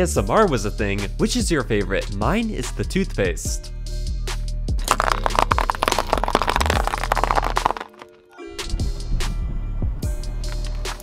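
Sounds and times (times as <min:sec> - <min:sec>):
background music: 0:00.0 - 0:11.0
candy cracking under a tyre: 0:04.8 - 0:08.1.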